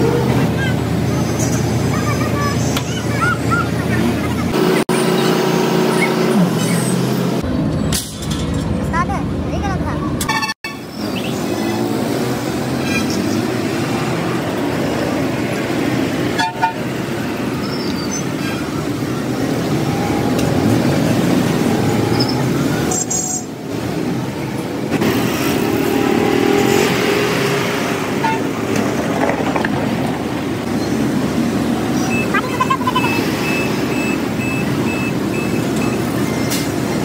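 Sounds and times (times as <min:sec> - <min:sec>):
road traffic: 0:00.0 - 0:37.0
vehicle horn: 0:10.2 - 0:10.8, 0:16.3 - 0:16.9, 0:28.2 - 0:28.5
motorbike and car engines passing: 0:10.9 - 0:37.0.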